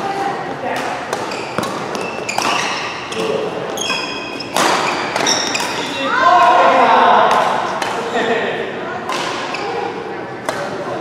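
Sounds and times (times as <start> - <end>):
court shoes squeaking: 0.0 - 6.5, 9.0 - 11.0
racket striking shuttlecock: 0.8 - 2.8, 4.5 - 5.9.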